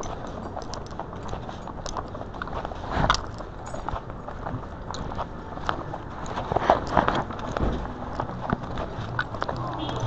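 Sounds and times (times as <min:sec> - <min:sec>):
footsteps on concrete: 0:00.0 - 0:10.0
gear jingling and rattling: 0:00.0 - 0:10.0.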